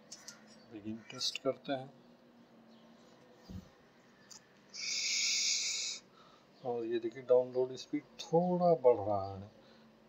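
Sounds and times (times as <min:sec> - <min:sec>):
steady hiss: 0:04.6 - 0:10.0.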